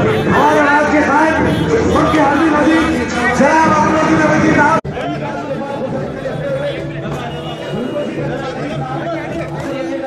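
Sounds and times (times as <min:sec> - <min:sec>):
crowd of men talking: 0:00.0 - 0:10.0.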